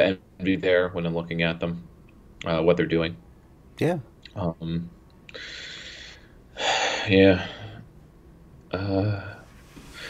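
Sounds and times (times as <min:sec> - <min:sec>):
person breathing in close: 0:05.3 - 0:07.8.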